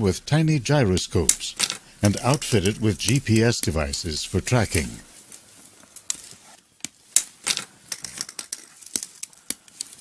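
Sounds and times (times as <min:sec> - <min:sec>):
soft rustling: 0:04.6 - 0:10.0.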